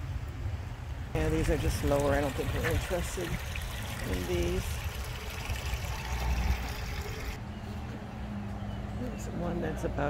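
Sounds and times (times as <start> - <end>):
fountain water splashing: 1.2 - 7.4.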